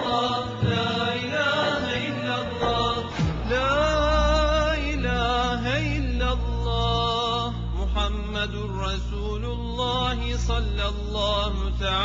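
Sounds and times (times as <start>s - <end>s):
steady low drone: 0.0s - 12.0s
man chanting: 1.2s - 12.0s.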